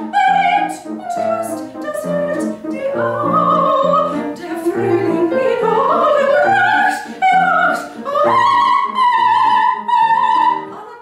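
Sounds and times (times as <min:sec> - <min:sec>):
piano waltz chords: 0:00.0 - 0:11.0
soprano singing: 0:00.0 - 0:11.0.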